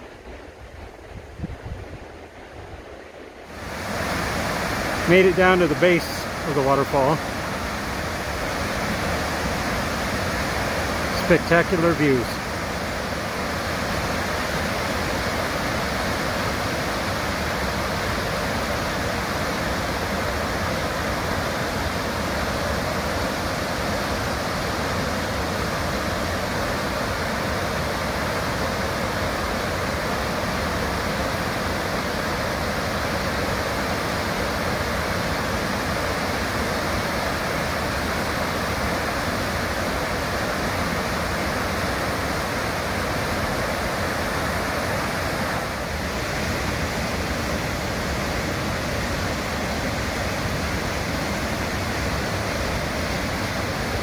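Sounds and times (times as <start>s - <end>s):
whitewater rushing: 0.0s - 54.0s.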